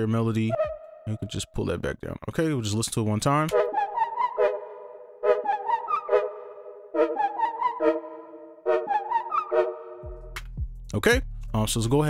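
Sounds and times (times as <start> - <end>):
synthesizer melody over chords: 3.5 - 10.4.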